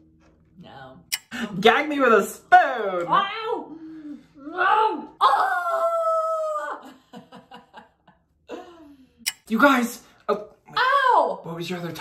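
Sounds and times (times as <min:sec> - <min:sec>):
woman laughing: 0:06.5 - 0:09.1.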